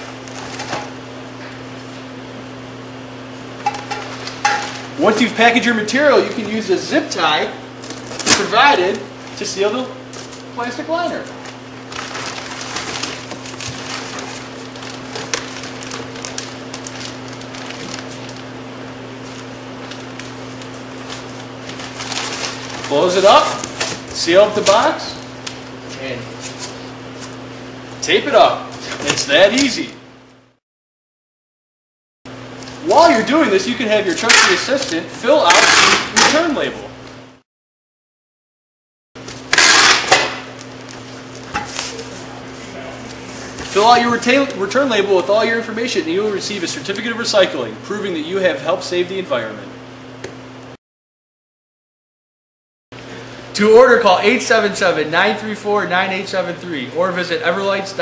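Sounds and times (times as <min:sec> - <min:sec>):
steady low hum: 0:00.0 - 0:30.6, 0:39.2 - 0:50.7
plastic bag crinkling: 0:11.5 - 0:18.5, 0:19.2 - 0:23.9.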